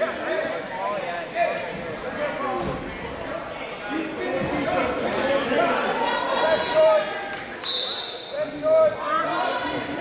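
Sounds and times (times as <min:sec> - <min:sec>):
voices in a gym: 0:00.0 - 0:10.0
referee's whistle blast: 0:07.6 - 0:08.5.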